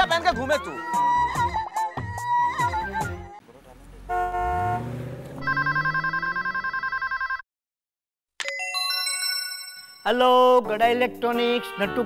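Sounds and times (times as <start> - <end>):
street traffic: 0.0 - 7.4
engine rising in pitch: 3.7 - 7.2
car horn: 4.0 - 6.8
telephone ringing with warbling trill: 5.4 - 7.4.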